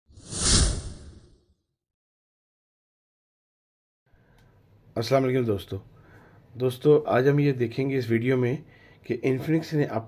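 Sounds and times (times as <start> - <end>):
whoosh with deep rumble: 0.1 - 1.4.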